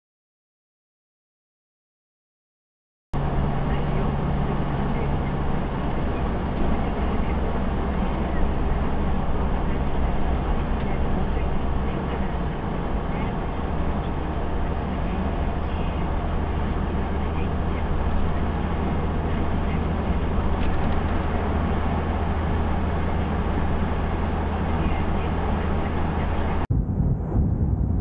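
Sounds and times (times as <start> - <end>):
car engine and tyre drone: 3.2 - 28.0.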